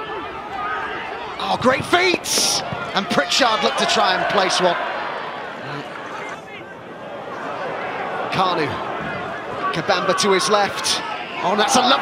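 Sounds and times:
crowd hubbub in stands: 0:00.0 - 0:12.0.

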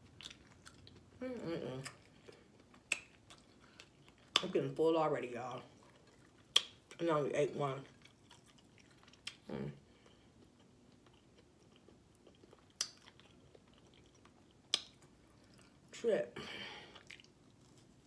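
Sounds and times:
person chewing: 0:00.0 - 0:01.2, 0:01.8 - 0:04.5, 0:05.7 - 0:07.0, 0:07.8 - 0:15.9, 0:16.8 - 0:18.0.

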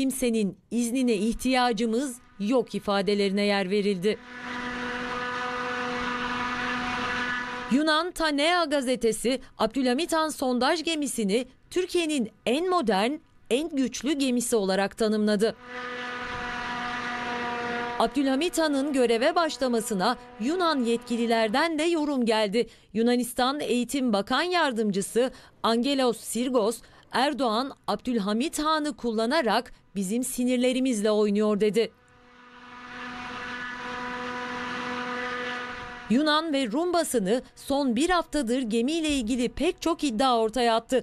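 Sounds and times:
engine drone with rushing noise: 0:01.2 - 0:08.4, 0:15.3 - 0:22.5, 0:31.9 - 0:39.8
machine humming: 0:03.9 - 0:07.8, 0:15.5 - 0:22.2, 0:32.0 - 0:36.3.

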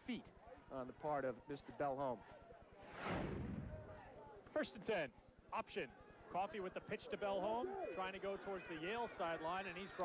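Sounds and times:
whoosh effect: 0:02.8 - 0:04.0.

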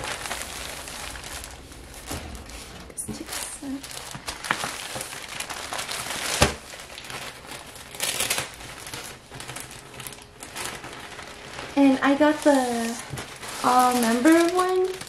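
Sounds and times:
plastic bag crinkling: 0:00.0 - 0:15.0.

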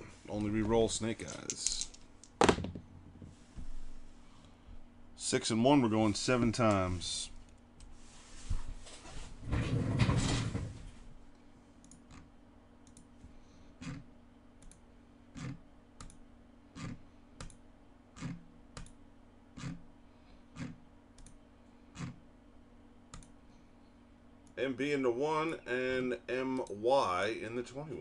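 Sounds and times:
computer mouse clicks: 0:15.4 - 0:16.2, 0:20.6 - 0:21.4, 0:23.1 - 0:23.4.

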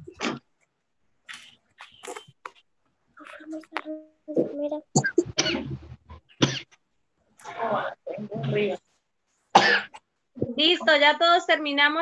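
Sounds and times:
indistinct children's voices: 0:03.2 - 0:05.9
children coughing: 0:04.9 - 0:06.8, 0:09.6 - 0:10.0.

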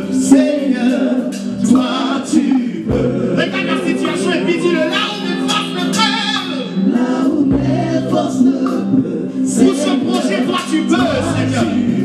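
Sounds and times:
backing vocalists: 0:00.0 - 0:12.0
electronic keyboard: 0:00.0 - 0:12.0
man singing lead: 0:00.0 - 0:12.0.

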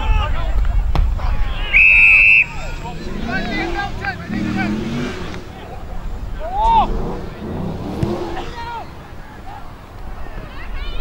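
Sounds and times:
people shouting: 0:01.2 - 0:05.8, 0:06.4 - 0:11.0.

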